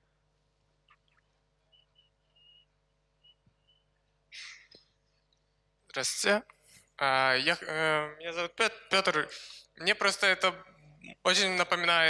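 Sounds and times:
faint high chirps: 1.7 - 4.8.

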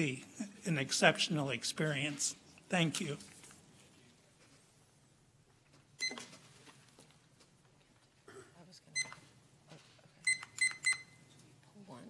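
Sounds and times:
low room noise: 0.0 - 12.0
short high electronic beeps: 10.3 - 11.2.

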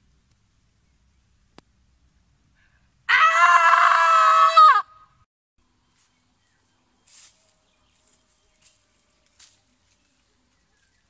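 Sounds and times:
woman screaming: 3.1 - 5.0.

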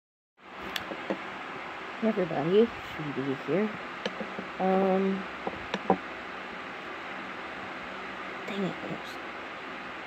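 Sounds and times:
room tone hiss: 0.4 - 10.0.

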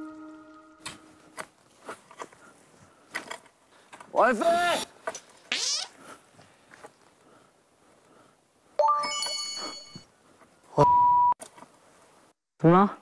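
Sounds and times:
bell-like chime: 8.8 - 10.1
brief steady beep: 10.8 - 11.4.

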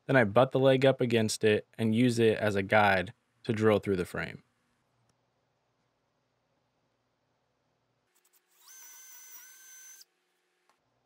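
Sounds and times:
power drill motor whine: 8.2 - 10.7.

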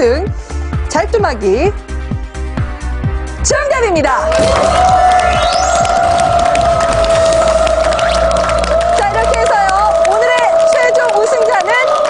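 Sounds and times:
audience applause: 4.2 - 12.0
celebratory music cue: 4.3 - 9.8.

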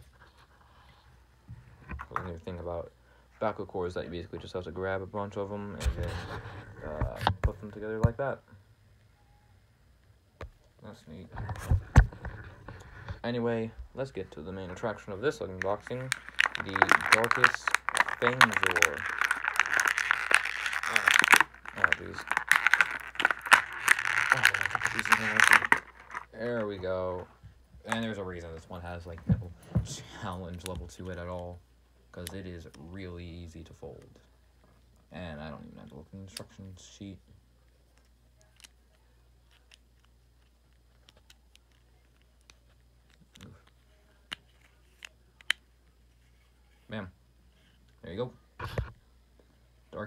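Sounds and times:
plastic packaging crinkling: 14.7 - 26.7.

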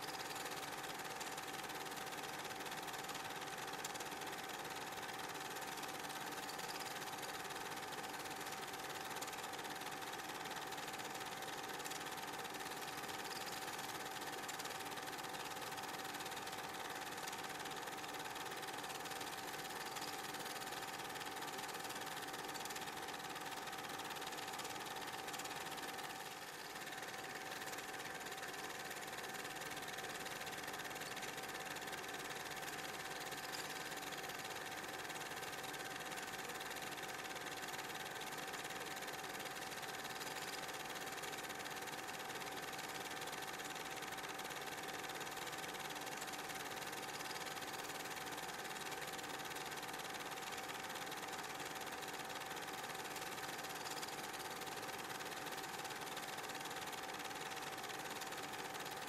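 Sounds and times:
film projector whirring: 0.0 - 59.0.

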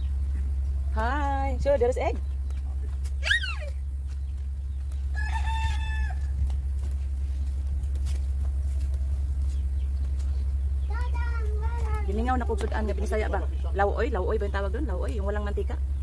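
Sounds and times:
steady low rumble: 0.0 - 16.0
rooster crowing: 5.1 - 6.6.

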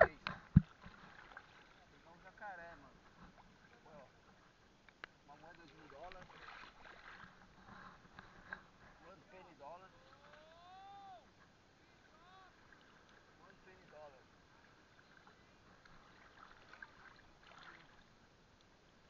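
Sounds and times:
water sloshing: 0.0 - 4.5, 5.4 - 10.6, 11.9 - 18.2.

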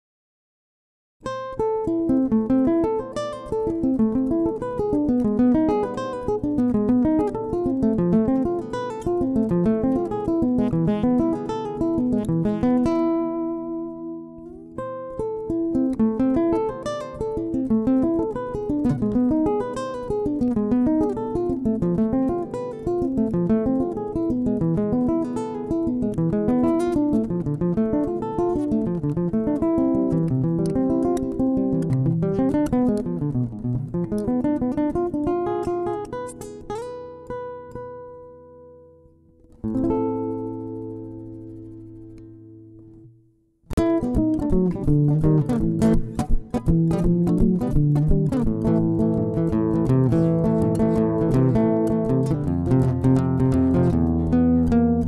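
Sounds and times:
fingerpicked acoustic guitar: 1.2 - 55.0.

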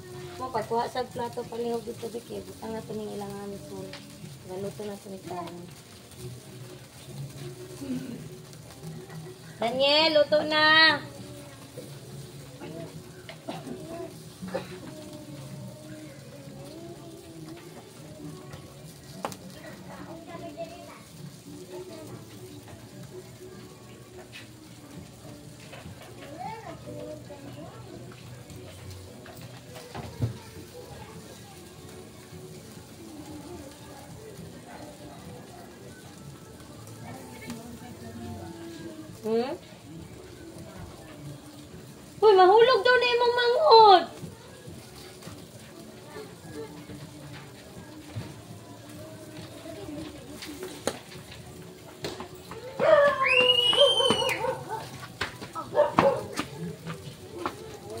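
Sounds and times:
background chatter of voices: 0.0 - 58.0
children playing: 0.0 - 58.0
meat sizzling on grill: 0.0 - 58.0.

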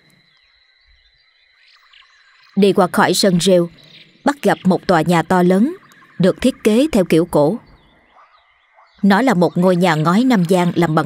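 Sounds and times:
frogs and insects trilling: 0.0 - 11.0.

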